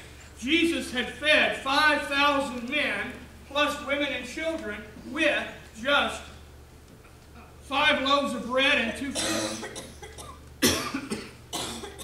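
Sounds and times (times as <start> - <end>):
man coughing: 9.1 - 12.0.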